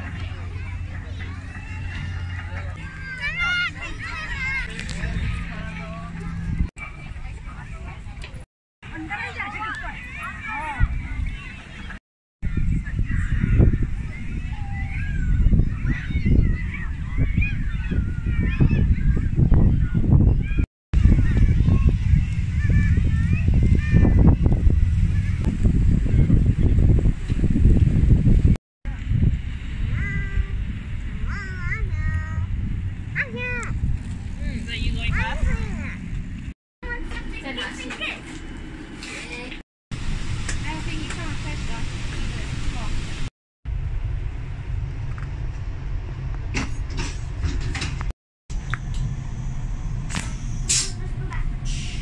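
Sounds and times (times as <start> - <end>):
voices: 0.0 - 25.4, 33.1 - 36.2, 36.8 - 38.4, 40.5 - 43.0, 50.1 - 52.0
low rumble of outdoor noise: 0.0 - 52.0.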